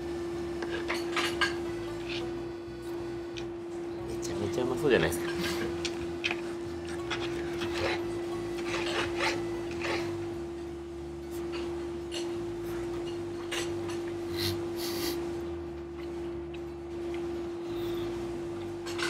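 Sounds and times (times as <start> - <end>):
steady hum: 0.0 - 19.0
cutlery scraping on plate: 6.3 - 10.2
knife sawing through meat: 7.0 - 10.2.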